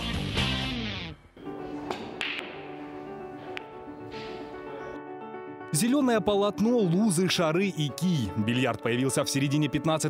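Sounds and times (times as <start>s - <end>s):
soft background music: 1.4s - 10.0s
snooker balls clicking together: 1.8s - 4.4s.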